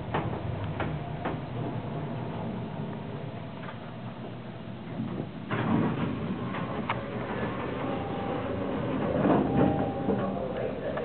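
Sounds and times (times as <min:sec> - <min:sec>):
elevator car rumbling: 0:00.0 - 0:11.0
indistinct voices: 0:07.8 - 0:11.0.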